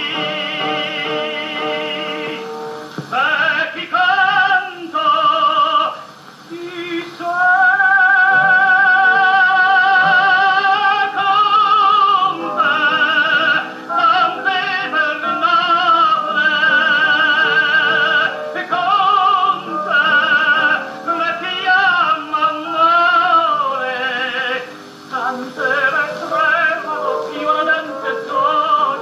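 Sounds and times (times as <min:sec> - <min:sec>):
high voice singing with vibrato: 0:00.0 - 0:29.0.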